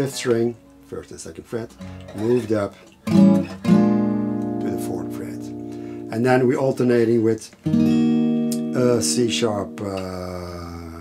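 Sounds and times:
soft picked guitar notes: 1.7s - 11.0s
acoustic guitar chord ringing: 3.0s - 6.7s, 7.6s - 10.6s.

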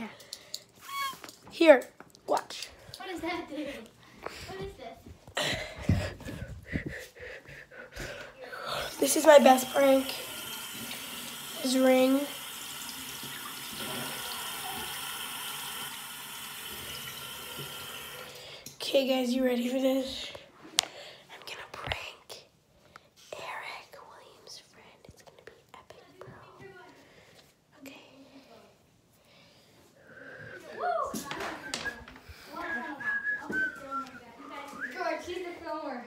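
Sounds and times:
water running from sink faucet: 8.9s - 18.5s
person whistling: 31.6s - 35.0s.

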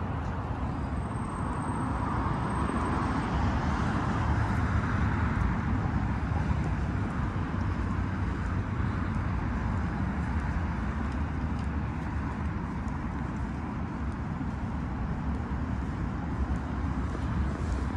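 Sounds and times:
distant road traffic rumble: 0.0s - 17.9s.

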